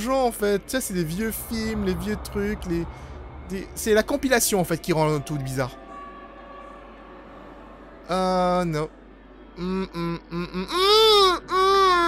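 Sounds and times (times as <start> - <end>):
eerie droning music: 0.0 - 8.1.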